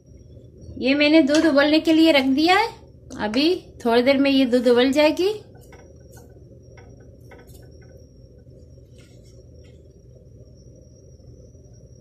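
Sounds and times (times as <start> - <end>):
faint steady low hum: 0.0 - 12.0
wooden spoon stirring in pot: 5.5 - 9.8.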